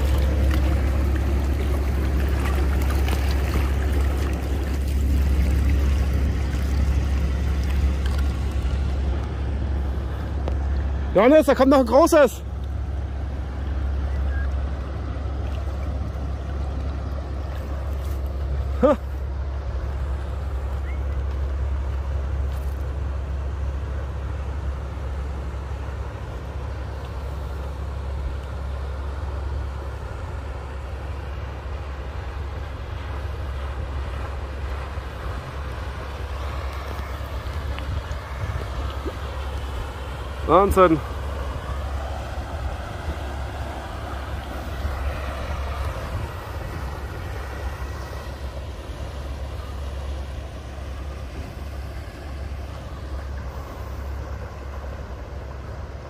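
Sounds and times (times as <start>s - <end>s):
boat diesel engine droning: 0.0s - 56.0s.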